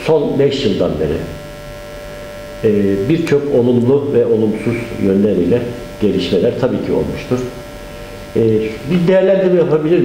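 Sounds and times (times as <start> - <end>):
man talking: 0.0 - 1.4, 2.6 - 7.6, 8.3 - 10.0
steady electrical hum: 0.0 - 10.0.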